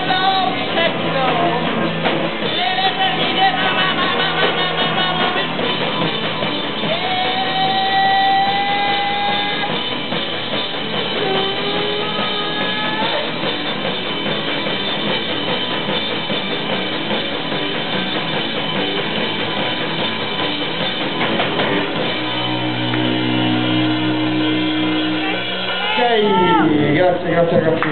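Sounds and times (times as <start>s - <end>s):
punk rock band playing: 0.0s - 27.9s
electric bass and guitar chord ringing: 3.0s - 27.6s
held electric guitar note: 22.1s - 26.7s.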